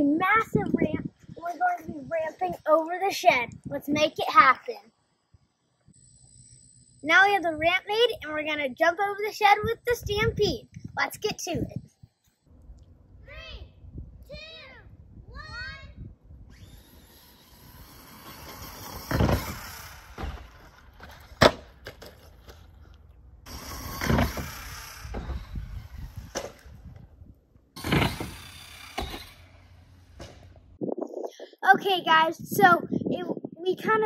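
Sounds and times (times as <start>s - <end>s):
electric motor whining: 16.4s - 21.0s, 23.4s - 27.2s, 27.8s - 30.8s.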